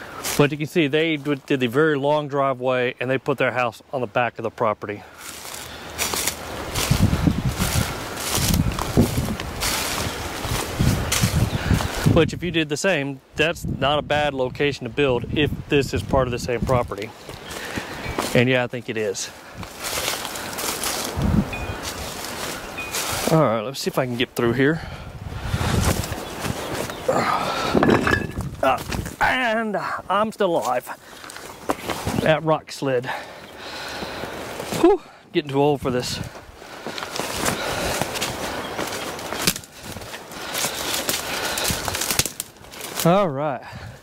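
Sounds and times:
dry brush rustling: 5.0s - 12.2s, 16.6s - 24.5s, 25.4s - 27.8s, 36.0s - 43.1s
wind on microphone: 6.6s - 12.6s, 13.5s - 17.0s, 21.1s - 23.2s, 24.8s - 29.2s.

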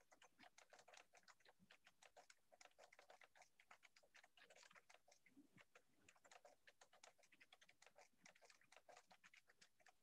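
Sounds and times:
computer keyboard typing: 0.0s - 10.0s.

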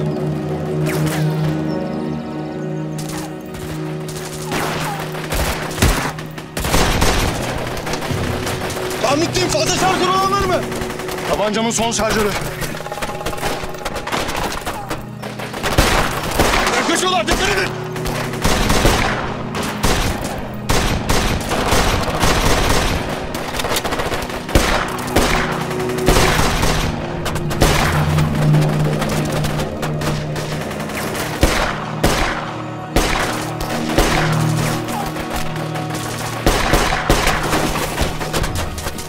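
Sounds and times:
dramatic music score: 0.0s - 39.0s
gunfire volleys: 13.9s - 27.0s, 35.9s - 38.9s.

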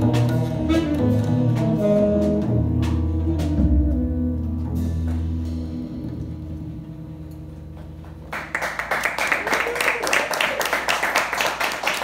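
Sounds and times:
upright bass: 0.0s - 8.5s
jazz combo playing: 0.0s - 9.0s
audience applause: 8.3s - 12.0s.

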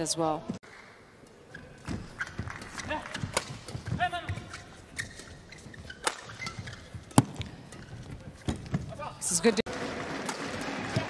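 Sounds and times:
shoes squeaking on court: 1.4s - 9.2s
rackets striking shuttlecock: 1.6s - 8.9s.

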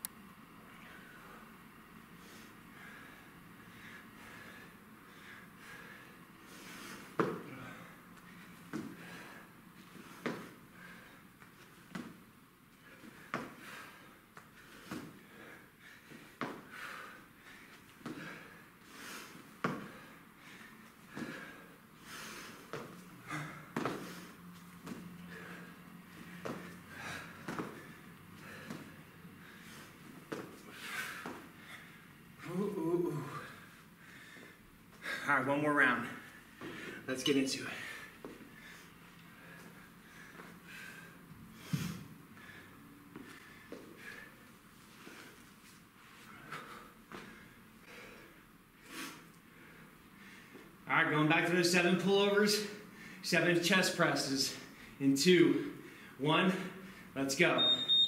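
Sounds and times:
man breathing hard: 0.6s - 35.3s, 36.0s - 50.8s, 52.6s - 53.2s, 55.6s - 57.2s.

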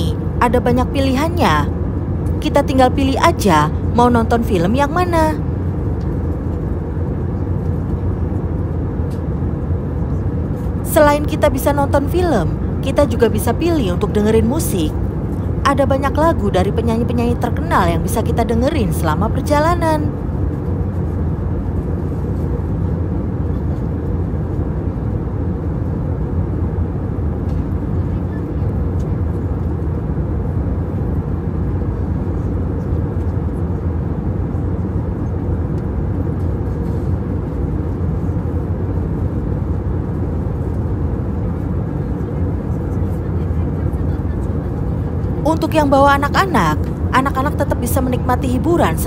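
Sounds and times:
airliner cabin noise: 0.0s - 49.0s.

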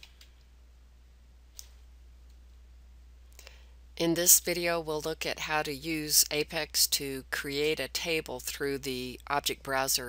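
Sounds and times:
computer mouse clicks: 0.0s - 0.5s, 1.5s - 2.4s
low steady hum: 0.0s - 10.0s.

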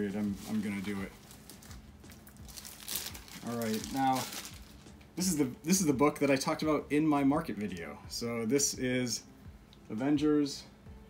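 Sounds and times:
packaging rustling and crinkling: 0.0s - 5.0s.

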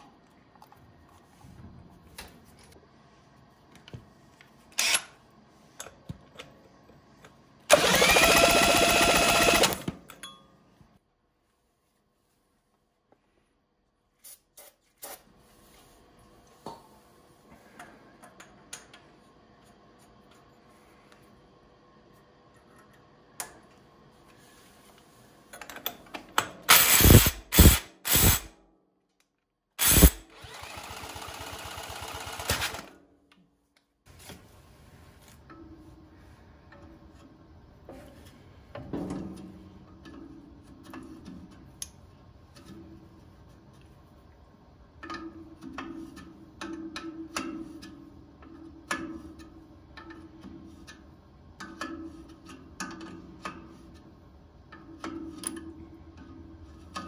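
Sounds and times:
small engine running: 7.7s - 9.8s, 29.8s - 32.9s
small motor whirring: 7.7s - 9.8s, 26.9s - 28.5s, 29.8s - 32.8s
cordless drill cranking engine: 7.7s - 9.9s, 29.8s - 32.9s.

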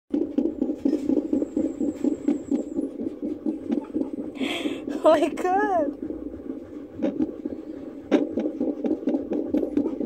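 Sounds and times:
doppler heartbeat whooshing pulse: 0.1s - 10.0s.

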